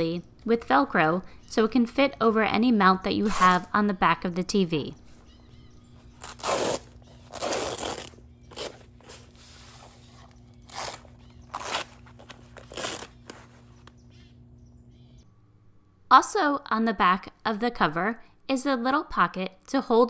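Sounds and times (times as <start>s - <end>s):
velcro pulled apart: 6.1s - 13.5s.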